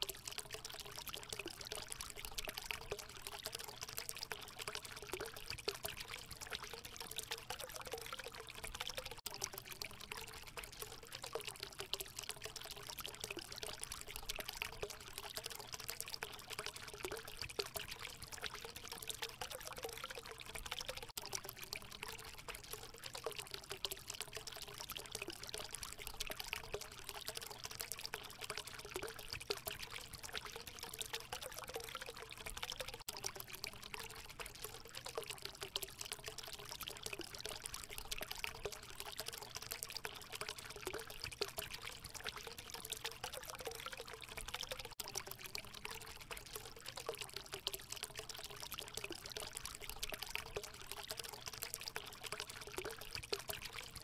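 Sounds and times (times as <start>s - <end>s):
water trickling: 0.0s - 54.0s.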